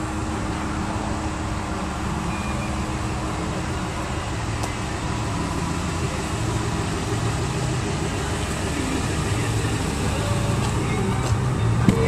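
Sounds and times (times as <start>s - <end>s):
pickup engine idling: 0.0s - 12.0s.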